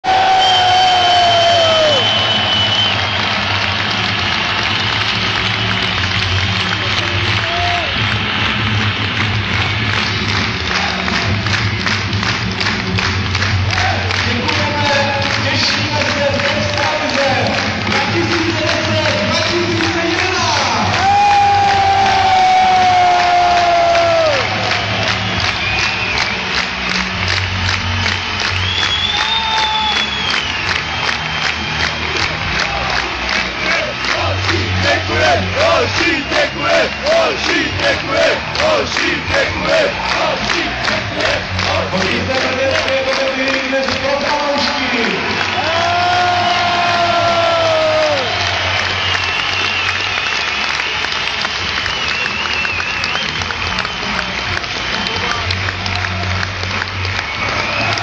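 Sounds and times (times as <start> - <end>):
clapped or drummed beat: 0.0 - 58.0
crowd cheering and chanting: 0.0 - 58.0.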